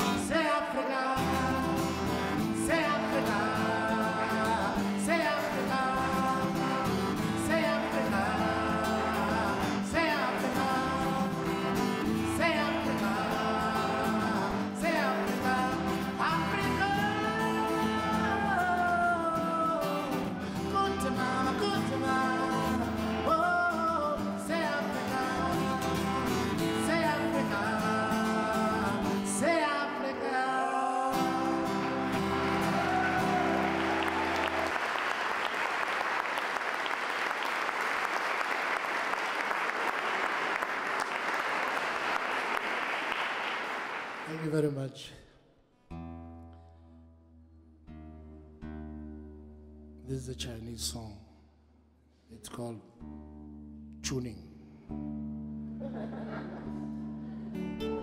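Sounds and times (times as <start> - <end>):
man singing: 0.0 - 33.8
acoustic guitar strumming: 0.0 - 35.1, 45.9 - 50.1, 54.8 - 58.0.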